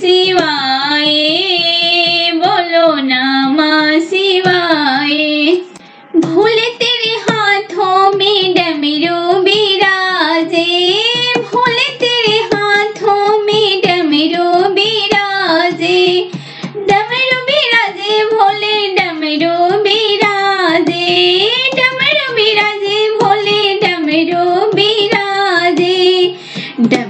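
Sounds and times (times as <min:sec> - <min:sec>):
high voice singing folk song: 0:00.0 - 0:27.0.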